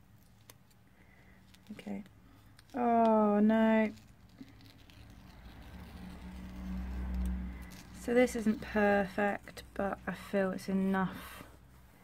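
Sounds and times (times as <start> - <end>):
vehicle passing rumble: 4.4 - 10.4.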